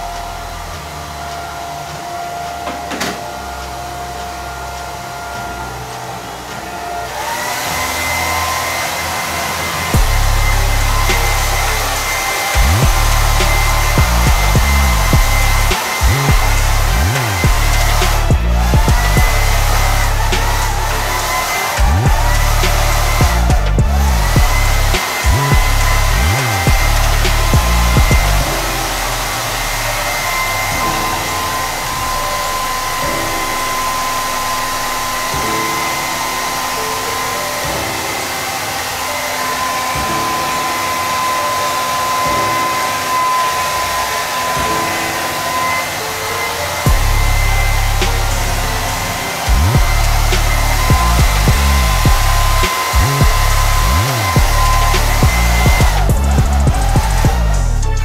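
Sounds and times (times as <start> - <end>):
background music with bass beat: 0.0 - 38.2, 46.3 - 58.0
hair dryer blowing: 0.0 - 58.0.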